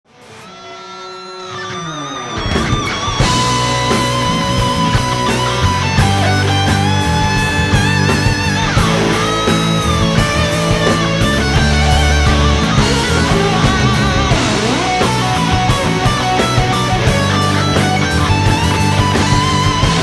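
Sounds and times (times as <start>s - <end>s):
lead electric guitar: 0.1s - 20.0s
drums and bass: 2.4s - 20.0s.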